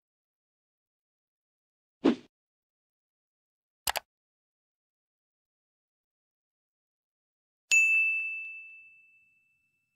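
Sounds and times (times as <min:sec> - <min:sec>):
bell ding: 0:07.7 - 0:09.9.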